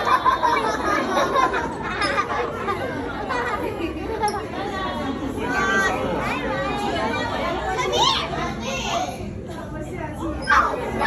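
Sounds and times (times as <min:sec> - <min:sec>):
background hubbub of visitors: 0:00.0 - 0:11.0
children chattering and calling out: 0:00.0 - 0:11.0.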